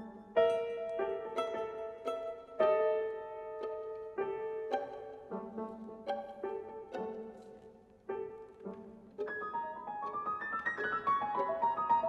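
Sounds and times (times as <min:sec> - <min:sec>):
piano notes ringing: 0:00.0 - 0:12.0
violin tones: 0:00.0 - 0:12.0.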